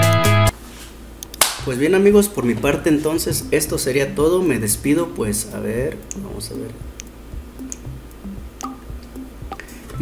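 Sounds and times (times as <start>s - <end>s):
man talking: 1.6s - 6.9s.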